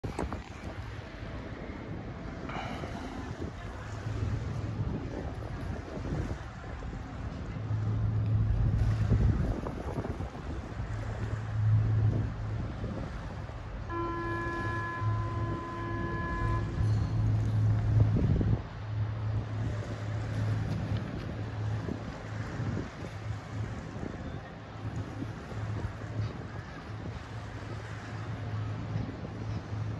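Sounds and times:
low steady hum: 0.0 - 29.9
wind buffeting microphone: 0.0 - 29.9
multi-pitched horn tone: 13.8 - 18.5.

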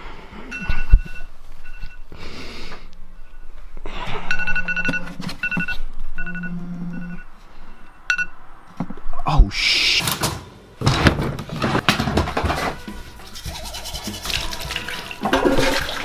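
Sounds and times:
phone alarm beeping: 0.5 - 2.1, 3.1 - 3.6, 4.2 - 8.4.

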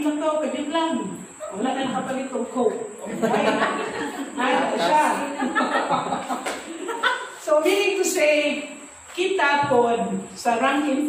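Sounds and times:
people talking: 0.0 - 11.0
people laughing: 3.0 - 7.4.

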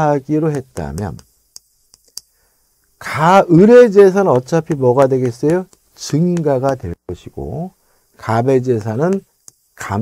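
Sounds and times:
chalk clicking on a chalkboard: 0.0 - 7.3, 8.2 - 10.0.

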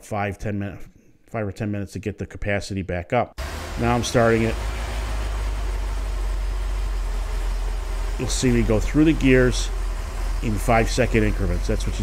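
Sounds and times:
car engine idling: 3.4 - 12.0.

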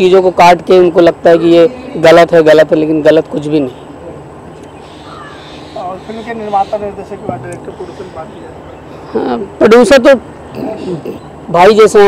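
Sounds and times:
outdoor background noise: 0.0 - 12.0
faint bird calls: 3.6 - 9.6, 10.2 - 11.5.

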